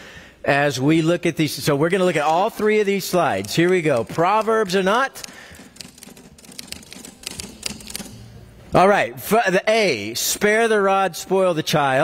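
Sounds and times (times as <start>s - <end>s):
small irregular clicks: 3.3s - 8.2s.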